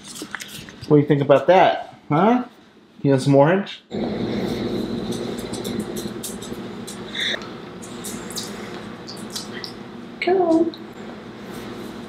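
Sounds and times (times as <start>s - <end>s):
steady multi-tone hum: 0.0s - 12.0s.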